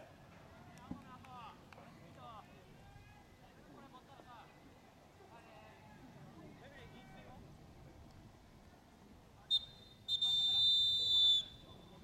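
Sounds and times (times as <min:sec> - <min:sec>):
referee's whistle blasts: 0:09.5 - 0:12.0.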